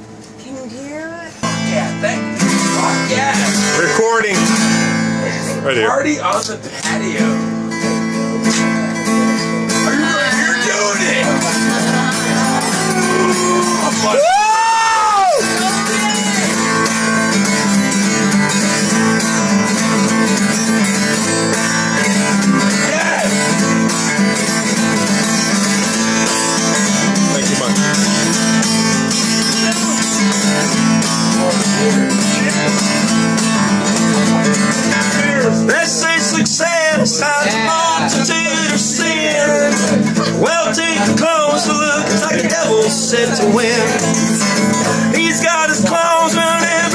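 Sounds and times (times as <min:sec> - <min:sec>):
acoustic guitar strumming: 0:00.0 - 0:46.9
person whooping: 0:10.0 - 0:16.6, 0:22.7 - 0:23.5.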